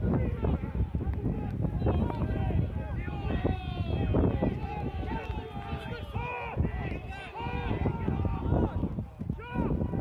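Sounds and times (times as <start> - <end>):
several voices shouting: 0.1 - 10.0.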